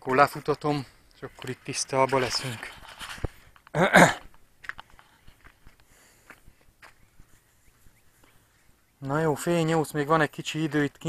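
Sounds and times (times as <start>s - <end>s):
faint footsteps: 0.0s - 9.3s.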